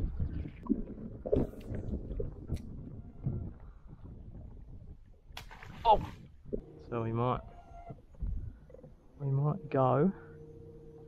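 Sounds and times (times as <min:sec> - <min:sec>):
wind rumbling on microphone: 0:00.0 - 0:09.1.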